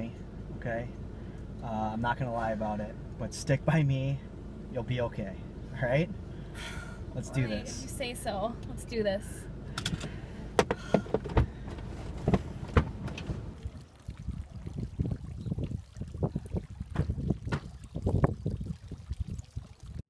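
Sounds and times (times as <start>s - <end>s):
car doors opening and shutting: 9.7s - 13.7s.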